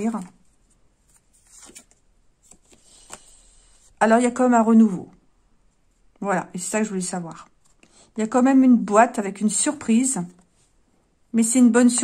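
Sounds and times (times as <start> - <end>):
cards rustling and tapping: 1.0 - 3.4.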